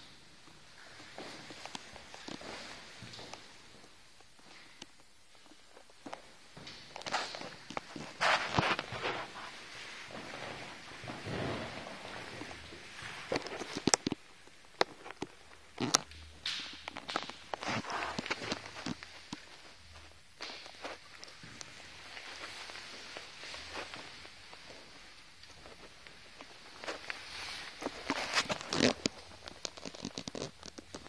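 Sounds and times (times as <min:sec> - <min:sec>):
footsteps: 0:00.4 - 0:04.8, 0:05.4 - 0:31.0
rustling: 0:05.5 - 0:31.0.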